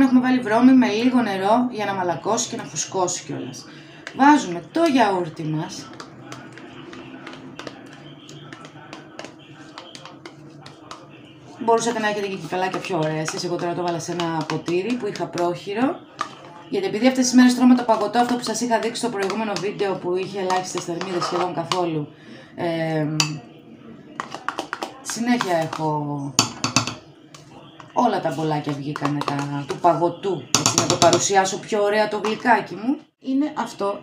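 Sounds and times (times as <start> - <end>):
spoon scraping plastic cup: 5.7 - 21.9, 24.2 - 25.8, 26.4 - 29.8.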